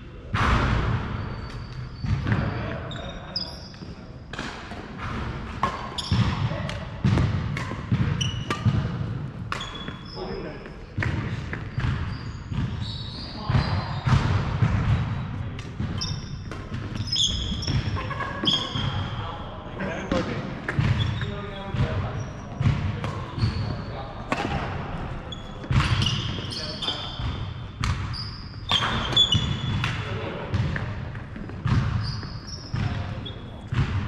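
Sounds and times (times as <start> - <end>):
racket hitting shuttlecock: 3.8 - 10.0, 13.5 - 19.1, 24.3 - 24.8, 27.3 - 32.0
shoes squeaking on wooden floor: 8.0 - 8.8, 9.6 - 14.1, 15.9 - 19.1, 25.3 - 27.4, 28.1 - 29.8, 31.3 - 33.6.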